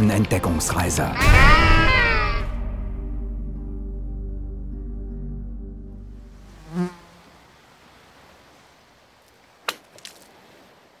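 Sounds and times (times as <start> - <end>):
faint outdoor ambience: 4.8 - 11.0
insect buzzing past: 6.3 - 8.6.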